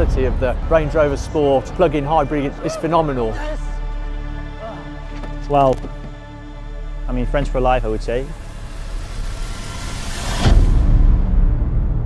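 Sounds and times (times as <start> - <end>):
deep boom with rumble: 0.0 - 2.0.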